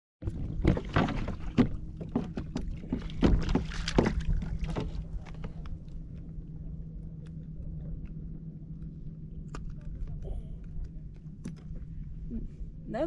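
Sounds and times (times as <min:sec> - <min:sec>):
water splashes and knocks on kayak: 0:00.2 - 0:05.8
steady low hum: 0:00.2 - 0:13.0.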